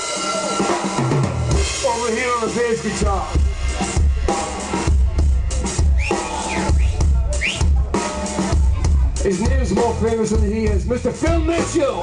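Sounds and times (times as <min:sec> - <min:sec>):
heavy low bass notes: 0:00.0 - 0:12.0
rock band playing live: 0:00.0 - 0:12.0.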